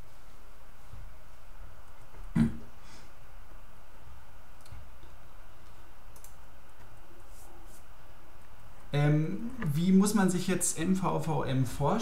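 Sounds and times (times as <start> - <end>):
background hiss: 0.0 - 12.0
faint computer mouse clicks: 5.6 - 6.4.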